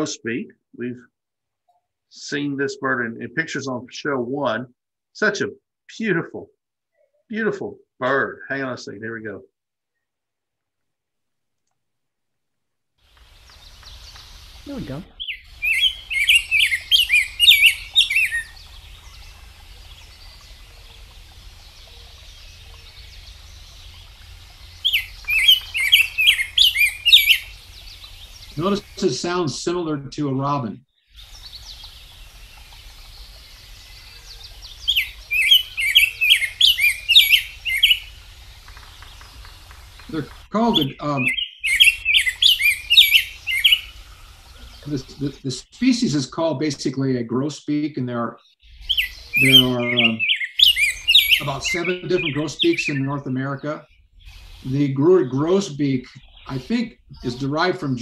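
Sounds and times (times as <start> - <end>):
bird song warbled phrases: 0.0 - 1.1, 1.7 - 10.1, 13.1 - 58.0
faint hiss: 13.0 - 30.5, 31.1 - 47.8, 48.7 - 58.0.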